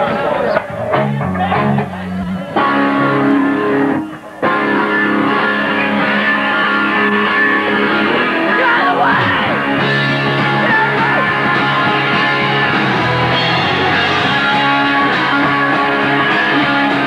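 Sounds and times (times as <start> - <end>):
punk rock band playing: 0.0 - 17.0.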